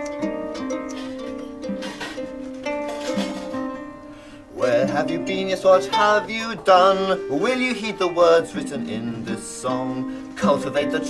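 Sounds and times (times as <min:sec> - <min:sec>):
acoustic guitar: 0:00.0 - 0:11.0
harp: 0:00.0 - 0:11.0.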